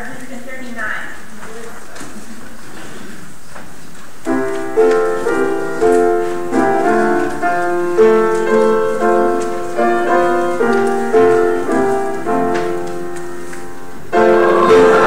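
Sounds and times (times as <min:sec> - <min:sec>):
room noise: 0:00.0 - 0:15.0
piano playing hymn chords: 0:04.2 - 0:15.0.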